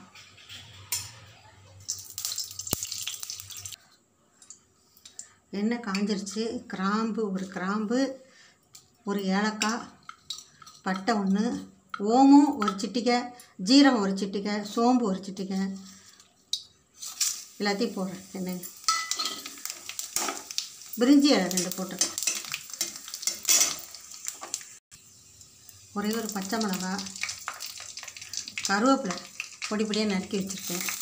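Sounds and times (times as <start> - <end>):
spices sizzling in hot oil: 1.8 - 3.8, 5.9 - 13.0, 15.8 - 31.0
spices clinking on steel plate: 9.5 - 12.9, 18.6 - 24.6
metal spatula scraping pan: 22.0 - 23.9.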